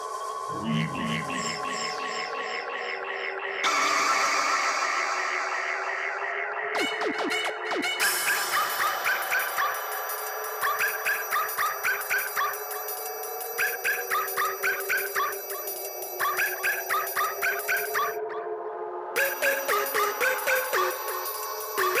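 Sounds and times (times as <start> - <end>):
sustained synth pad: 0.0 - 6.8
repeated high synth notes: 0.5 - 2.7, 19.2 - 22.0.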